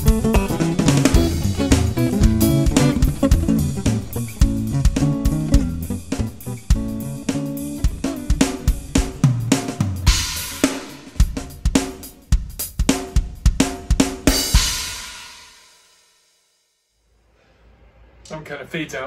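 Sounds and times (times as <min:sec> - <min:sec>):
acoustic guitar backing track: 0:00.0 - 0:10.2
electronic drum kit groove: 0:00.0 - 0:15.2.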